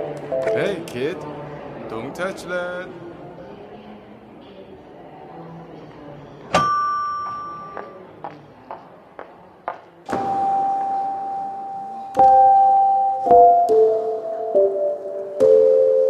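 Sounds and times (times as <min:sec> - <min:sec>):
floor piano notes: 0:00.0 - 0:00.9, 0:10.1 - 0:16.0.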